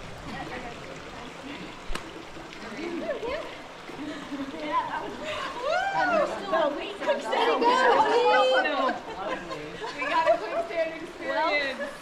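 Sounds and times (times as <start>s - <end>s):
people chattering: 0.0s - 12.0s.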